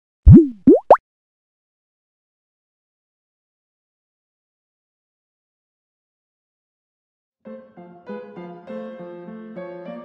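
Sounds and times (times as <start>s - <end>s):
cartoon pops: 0.3s - 1.0s.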